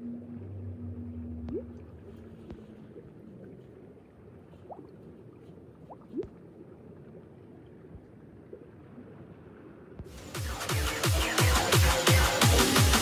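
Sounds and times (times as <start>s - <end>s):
rising bloops: 0.0s - 2.2s
watery bubbling burble: 0.0s - 9.4s.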